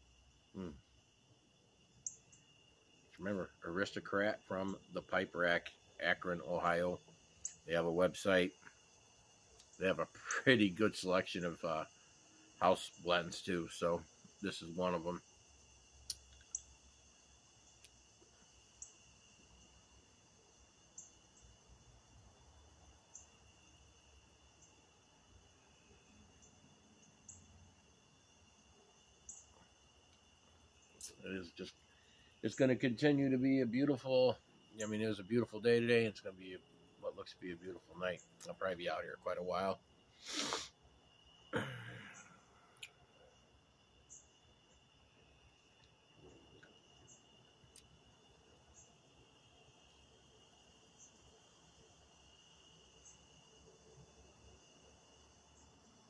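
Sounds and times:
crickets chirring: 0:00.0 - 0:56.0
faint clicks: 0:16.0 - 0:16.7
man exhaling: 0:40.2 - 0:40.7, 0:41.6 - 0:42.5
man coughing: 0:41.6 - 0:42.3.

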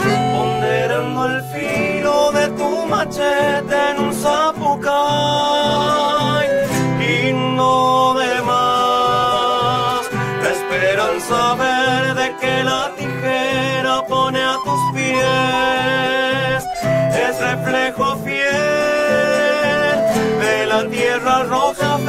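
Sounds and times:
button accordion chords: 0:00.0 - 0:07.2, 0:08.2 - 0:22.0
men singing: 0:00.0 - 0:22.0
strummed acoustic guitar: 0:00.0 - 0:22.0.

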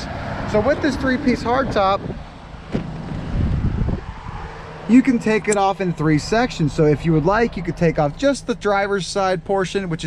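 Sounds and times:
wind buffeting microphone: 0:00.0 - 0:07.6.

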